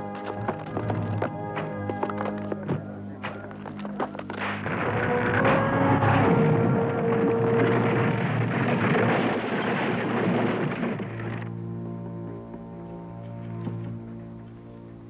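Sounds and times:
loud rumbling crash: 4.3 - 11.5.

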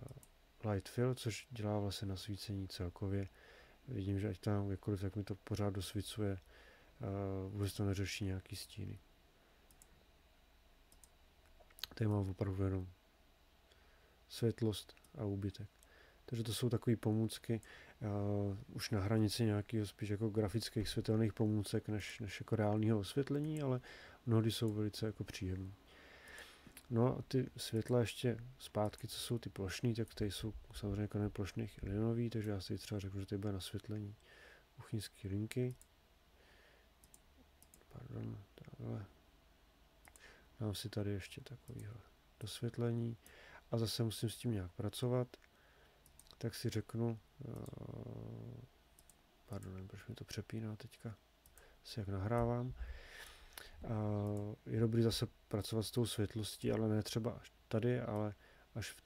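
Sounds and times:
computer mouse clicks: 9.7 - 10.0, 10.9 - 12.0, 37.0 - 38.3, 45.4 - 46.4, 47.5 - 47.8, 49.0 - 49.8.

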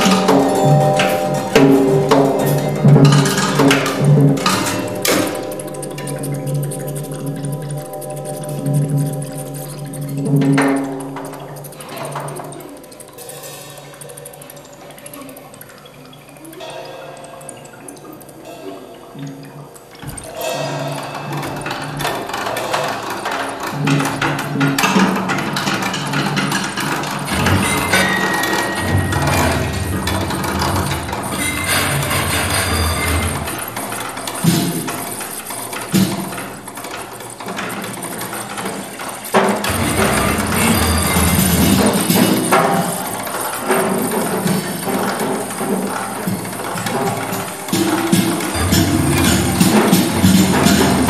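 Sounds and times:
sharp percussion hits: 0.0 - 14.3, 20.0 - 36.8, 38.6 - 51.0
experimental percussion and keyboard music: 0.0 - 51.0
low drone: 39.7 - 43.8.

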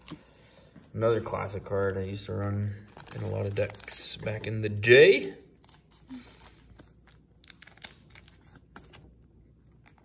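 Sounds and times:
trading cards clicking and rustling: 1.7 - 9.2.

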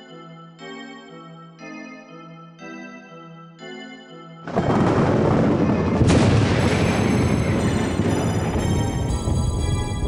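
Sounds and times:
music with sustained notes: 0.0 - 10.0
loud rumbling boom: 4.5 - 9.7.

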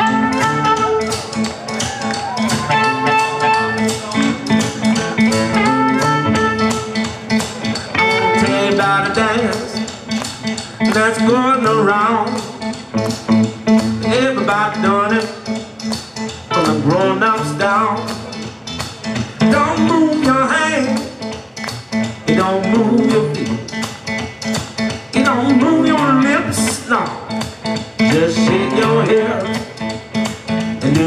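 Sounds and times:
harmonica wailing bent notes: 0.0 - 7.2
blues band playing: 0.0 - 31.0.

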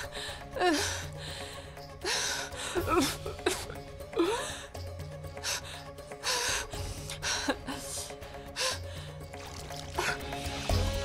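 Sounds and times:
dramatic music with low drone: 0.0 - 11.0.

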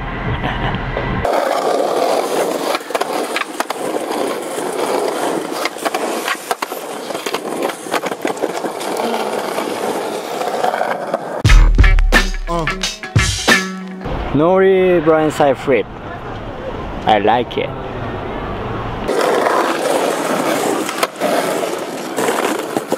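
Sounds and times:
skateboard rolling over paving stones: 1.2 - 11.4, 19.1 - 22.9
skateboard wheels clicking on seams: 1.2 - 11.4, 19.1 - 22.9
loud music with deep bass: 11.4 - 14.1.

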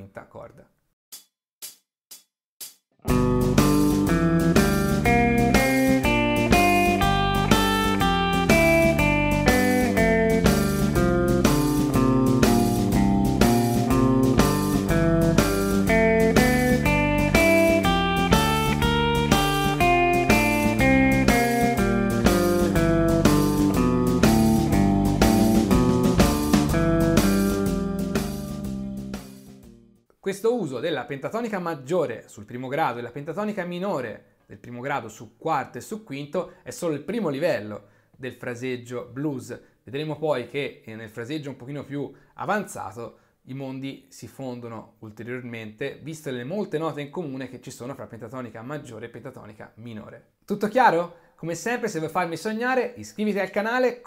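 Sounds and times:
blues guitar: 3.0 - 29.2
blues backing track with drums: 3.1 - 29.7.

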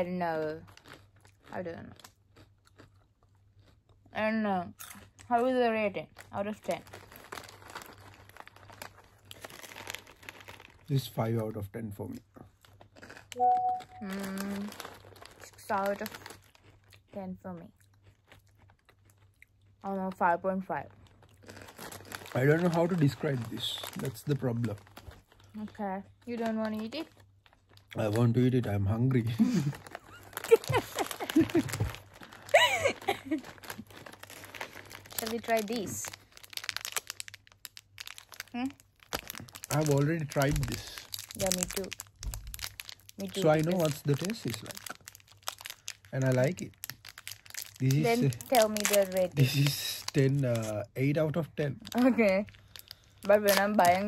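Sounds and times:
plastic snack packets crinkling: 0.0 - 3.8, 4.9 - 17.2, 17.9 - 54.0
woman laughing: 29.4 - 31.9, 32.5 - 33.5.

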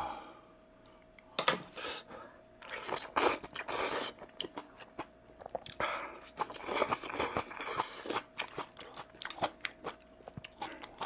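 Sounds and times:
biting and chewing food: 2.6 - 11.0.

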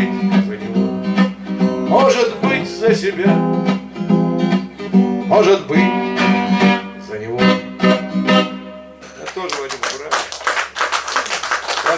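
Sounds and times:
audience applauding: 9.2 - 11.9.

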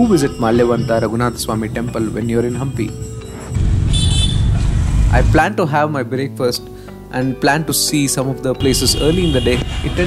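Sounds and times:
road traffic passing: 0.9 - 5.4, 8.6 - 10.0
short high horn toot: 3.9 - 4.5.

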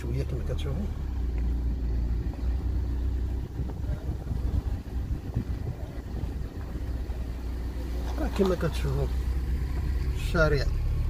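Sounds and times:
car driving slowly from inside: 0.0 - 11.0.

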